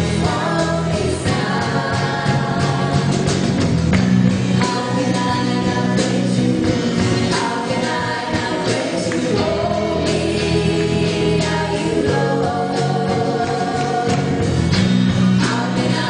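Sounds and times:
singers at microphones: 0:00.0 - 0:03.7, 0:04.5 - 0:16.0
band with drums and guitar: 0:00.0 - 0:16.0
congregation singing along: 0:00.0 - 0:16.0.

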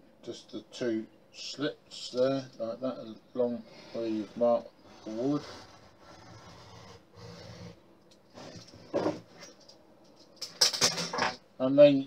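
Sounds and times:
knife scraping wood: 0:04.8 - 0:09.6.

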